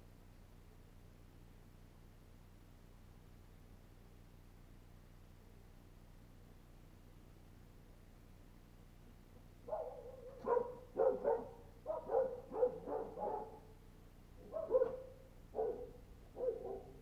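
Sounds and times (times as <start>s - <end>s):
dog barking: 9.7s - 13.7s, 14.4s - 17.0s.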